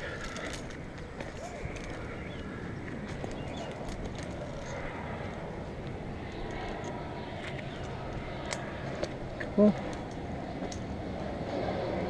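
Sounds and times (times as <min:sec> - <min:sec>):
clicks and knocks of climbing hardware: 0:00.0 - 0:02.1
climber breathing: 0:00.0 - 0:02.7
rope rustling: 0:00.0 - 0:10.1.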